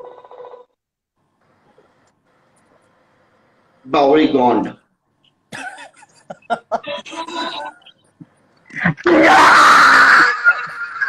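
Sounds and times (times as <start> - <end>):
man screaming with laughter: 9.0 - 11.0.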